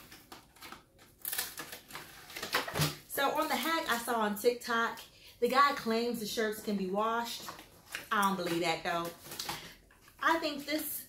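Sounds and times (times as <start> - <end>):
crinkly plastic rustles: 0.0 - 4.2, 7.2 - 10.9.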